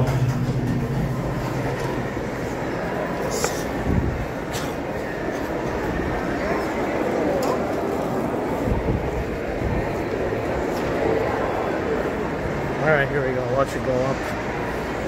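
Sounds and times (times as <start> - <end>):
murmur of many voices: 0.0 - 15.0.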